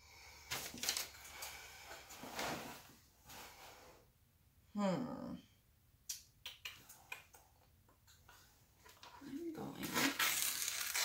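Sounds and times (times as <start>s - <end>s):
gloved hands rustling and scraping canvas: 9.5s - 11.0s.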